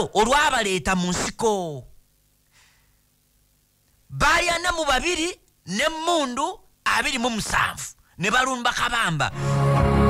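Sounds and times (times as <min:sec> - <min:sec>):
faint low hum: 0:00.0 - 0:09.8
soft breath: 0:02.5 - 0:03.1.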